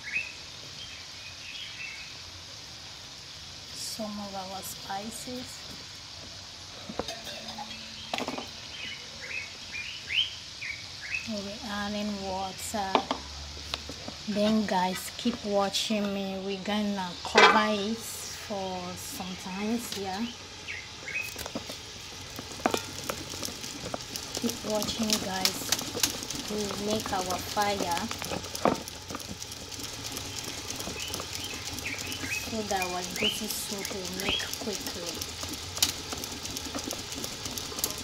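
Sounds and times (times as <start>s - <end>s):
pot of soup sizzling and bubbling: 0.0s - 38.0s
steady background hiss: 0.0s - 38.0s
bird chirping: 7.2s - 11.3s, 19.5s - 21.6s, 22.6s - 35.2s.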